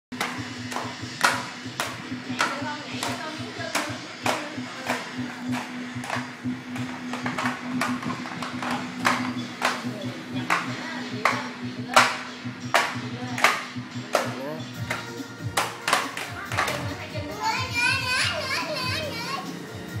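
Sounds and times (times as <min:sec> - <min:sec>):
low hum and music beat: 0:00.1 - 0:20.0
sharp clacks of discs: 0:00.2 - 0:16.9.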